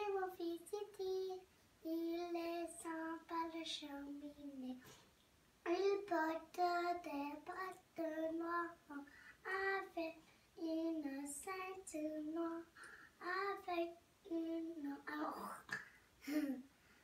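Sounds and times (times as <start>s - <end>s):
boy singing unaccompanied: 0.0s - 4.9s, 5.6s - 15.8s.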